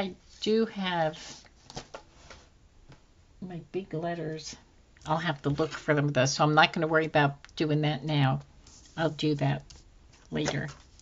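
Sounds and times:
paper rustling and tapping: 1.6 - 3.0.

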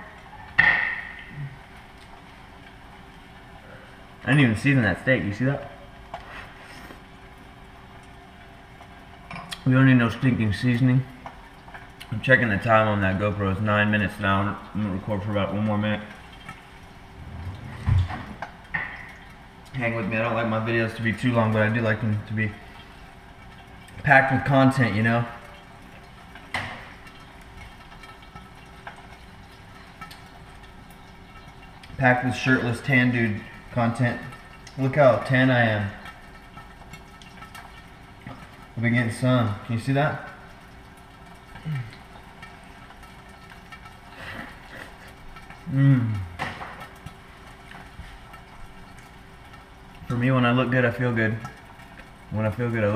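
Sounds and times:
person humming: 45.7 - 46.4.

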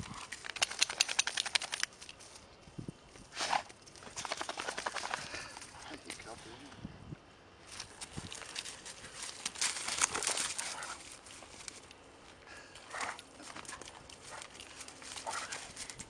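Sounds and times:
paws scuffing on gravel: 7.9 - 15.9.

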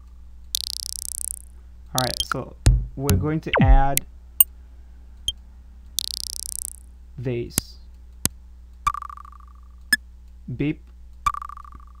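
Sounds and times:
vibraslap fluttering rattle: 0.6 - 1.5.

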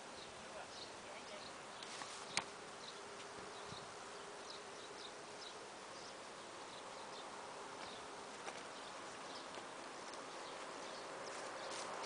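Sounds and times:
insect buzzing: 0.0 - 12.0.

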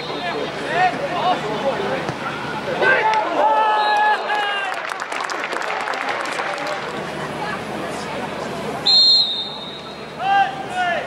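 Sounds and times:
crowd clapping: 4.0 - 7.2.

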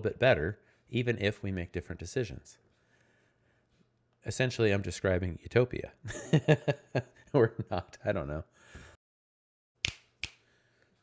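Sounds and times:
finger snaps: 9.8 - 10.5.

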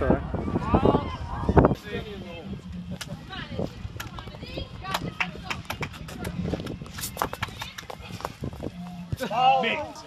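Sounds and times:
shoes scraping on concrete: 5.8 - 9.3.

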